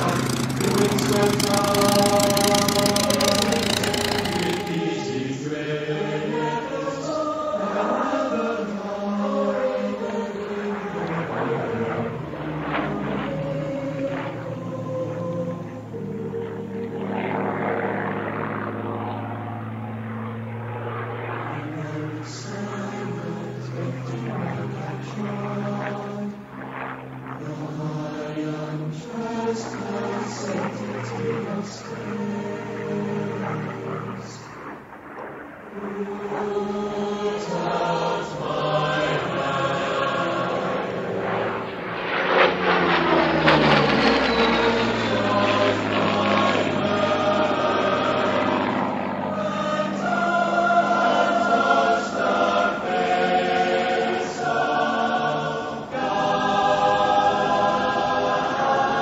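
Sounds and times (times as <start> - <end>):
choir singing: 0.0 - 17.3, 21.4 - 26.4, 27.3 - 34.4, 35.7 - 59.0
propeller aircraft engine droning: 0.0 - 59.0.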